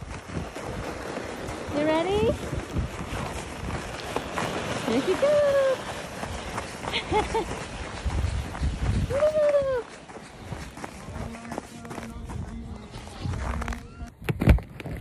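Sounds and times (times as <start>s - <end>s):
footsteps crunching on snow: 0.0s - 14.1s.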